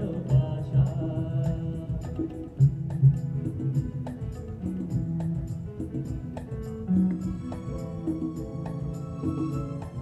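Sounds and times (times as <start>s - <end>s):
live band instrumental music: 0.0s - 10.0s.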